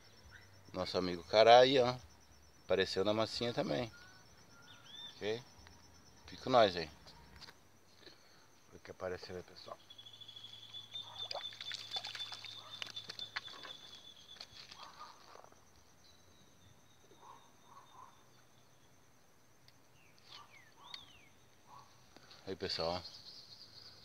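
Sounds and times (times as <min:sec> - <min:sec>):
falling bird chirp: 0:09.6 - 0:15.4.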